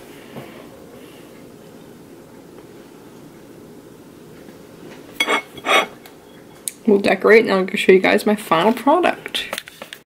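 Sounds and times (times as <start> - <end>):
ceramic plate clinking: 5.2 - 6.0.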